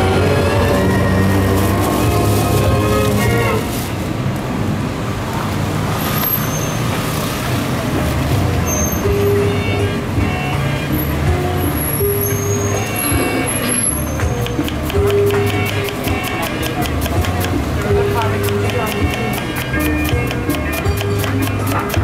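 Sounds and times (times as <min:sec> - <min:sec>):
vehicle engines rumbling: 0:00.0 - 0:22.0.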